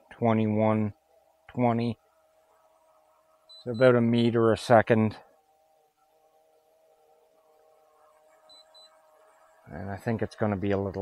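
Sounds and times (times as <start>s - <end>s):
faint steady hum: 0.0s - 11.0s
faint high beeps: 3.4s - 4.3s, 8.4s - 9.8s.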